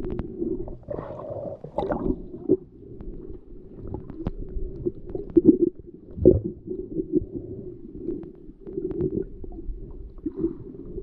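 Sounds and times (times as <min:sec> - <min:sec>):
underwater water rumble: 0:00.0 - 0:11.0.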